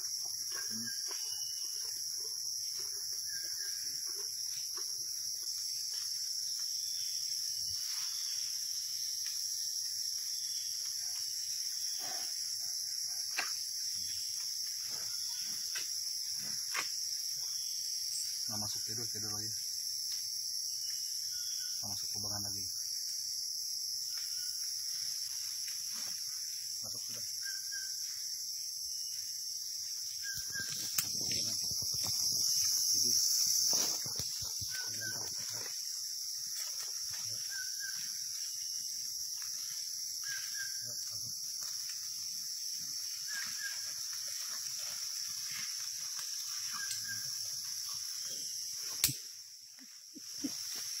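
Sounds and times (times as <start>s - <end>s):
short double insect call: 0.0s - 2.1s, 24.0s - 38.9s, 39.5s - 41.3s, 43.0s - 44.1s, 45.2s - 51.0s
insects droning: 0.0s - 51.0s
sharp click: 49.0s - 49.2s.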